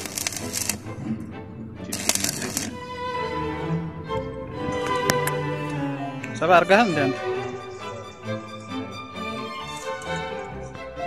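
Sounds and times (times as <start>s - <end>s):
arc welder crackling: 0.0s - 0.8s.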